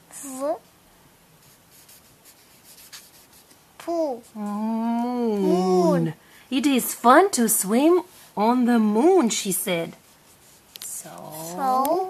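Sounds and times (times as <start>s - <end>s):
fingertip rubbing paper page: 1.4s - 3.6s, 10.0s - 12.0s
person speaking: 3.8s - 10.0s, 10.8s - 12.0s.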